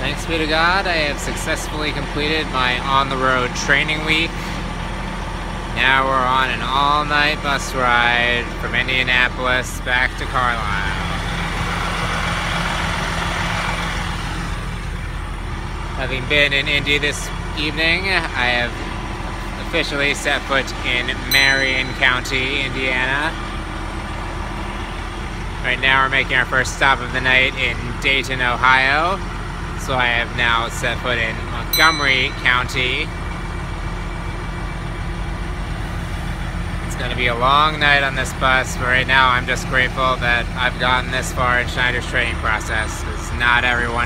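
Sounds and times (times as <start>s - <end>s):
diesel bus engine idling: 0.0s - 44.0s.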